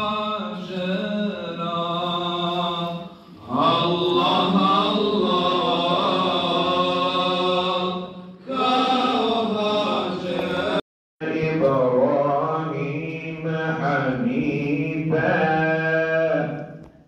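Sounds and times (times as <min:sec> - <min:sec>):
men chanting a prayer: 0:00.0 - 0:16.7.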